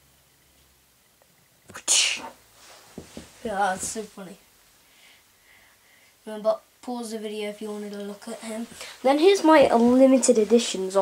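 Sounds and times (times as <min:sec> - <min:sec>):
faint handling sounds: 0:02.2 - 0:04.2.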